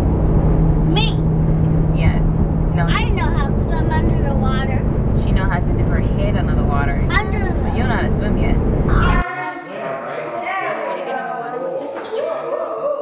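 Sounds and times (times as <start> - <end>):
car engine rumble and road noise: 0.0 - 9.2
voices in a quiet room: 1.9 - 13.0
woman speaking: 5.2 - 13.0.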